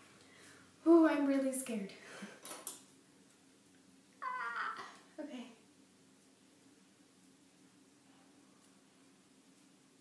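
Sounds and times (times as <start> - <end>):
woman's high-pitched squeal: 4.2 - 5.0.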